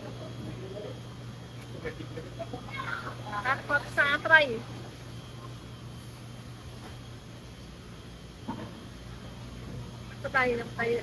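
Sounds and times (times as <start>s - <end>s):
machinery hum: 0.0s - 11.0s.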